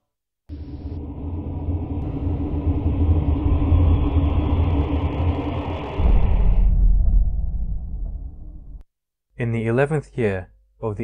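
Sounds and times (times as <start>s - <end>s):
deep rumbling boom: 0.5s - 8.9s.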